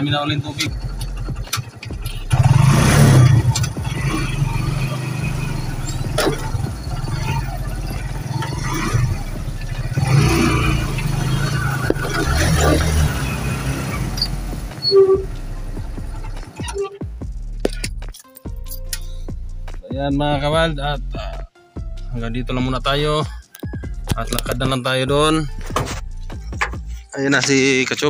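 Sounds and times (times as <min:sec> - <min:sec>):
vehicle engine running: 0:00.0 - 0:23.1
knocks and rattles: 0:05.6 - 0:16.8.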